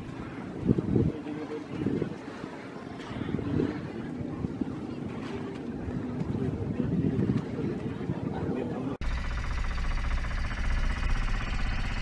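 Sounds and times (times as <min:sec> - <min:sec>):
faint voices: 0:00.0 - 0:09.0
wind rumbling on microphone: 0:00.0 - 0:09.0.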